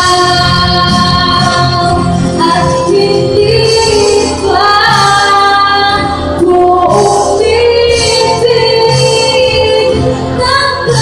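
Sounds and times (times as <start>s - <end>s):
live band playing: 0.0s - 11.0s
woman singing: 0.0s - 11.0s.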